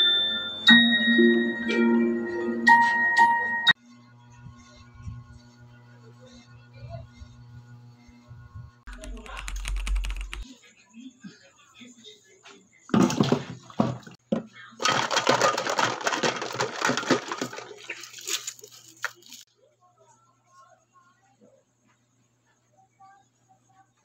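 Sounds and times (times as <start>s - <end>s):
water splashing into plastic jug: 14.8s - 19.4s.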